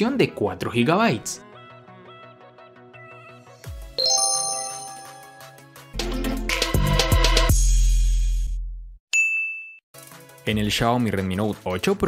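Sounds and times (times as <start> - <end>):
background music: 0.0 - 7.4
bright ding: 4.0 - 5.6.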